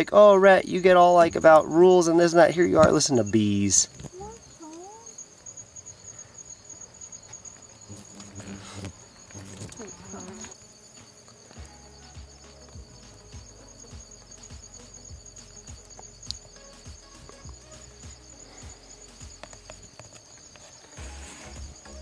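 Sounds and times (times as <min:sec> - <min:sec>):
crickets trilling: 0:00.0 - 0:22.0.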